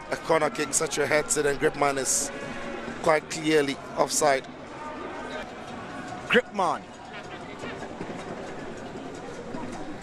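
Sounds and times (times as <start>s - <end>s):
stadium crowd ambience: 0.0s - 10.0s.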